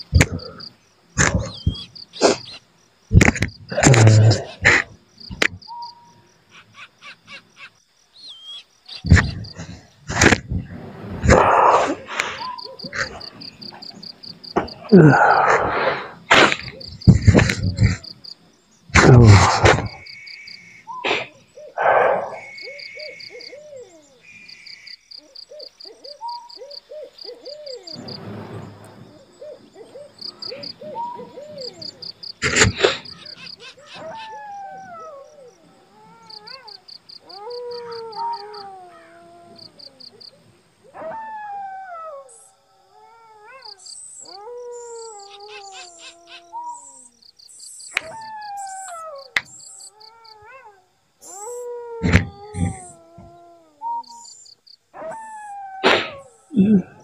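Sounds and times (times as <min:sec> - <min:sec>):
wild animal calls: 0:00.0 - 0:07.8, 0:08.4 - 0:47.3, 0:47.9 - 0:57.0
insects chirping: 0:00.0 - 0:57.0.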